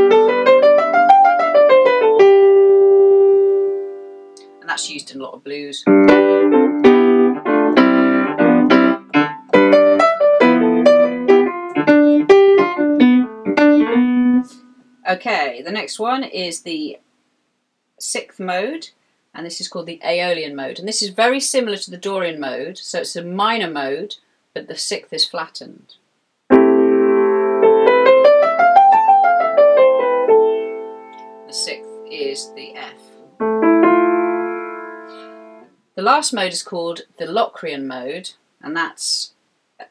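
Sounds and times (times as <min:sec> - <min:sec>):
piano chords and notes: 0:00.0 - 0:04.9, 0:05.8 - 0:15.0, 0:26.5 - 0:35.7.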